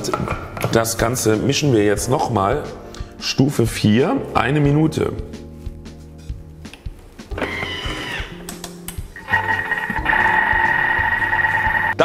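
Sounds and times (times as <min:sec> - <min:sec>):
background music: 0:00.0 - 0:12.0
kitchen mixer motor whirring: 0:09.3 - 0:11.9.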